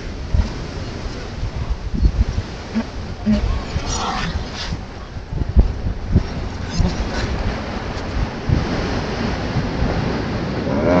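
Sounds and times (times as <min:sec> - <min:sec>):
ocean surf: 0:00.0 - 0:11.0
wind buffeting microphone: 0:00.0 - 0:11.0.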